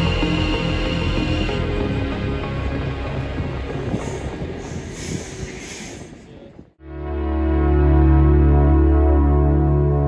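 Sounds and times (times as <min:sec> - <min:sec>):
background music: 0:00.0 - 0:05.5, 0:06.8 - 0:10.0
train rail and wheel noise: 0:00.0 - 0:06.8.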